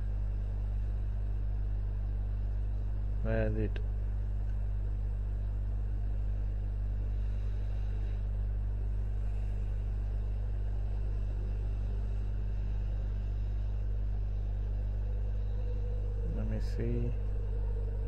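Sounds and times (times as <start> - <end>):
low hum with faint hiss: 0.0 - 18.0.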